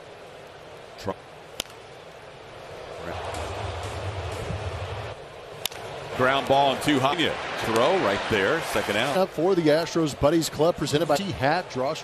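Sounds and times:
crowd murmur: 2.7 - 6.2.

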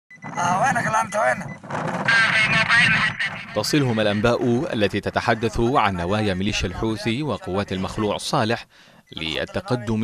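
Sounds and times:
man talking into radio microphone: 0.2 - 10.0.

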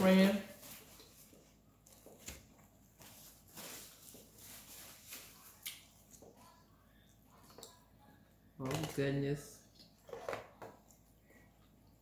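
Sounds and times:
soft chewing: 0.9 - 3.4, 9.6 - 12.0.

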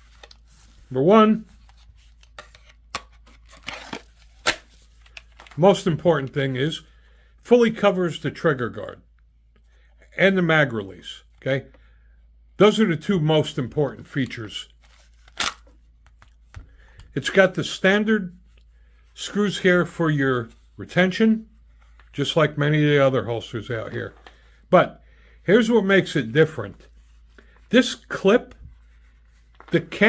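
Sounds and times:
plastic holster scrape: 0.0 - 0.8, 1.4 - 5.6.

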